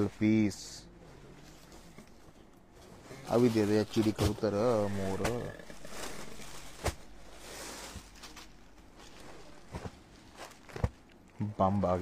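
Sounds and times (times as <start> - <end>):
cloth rustling: 1.1 - 11.2.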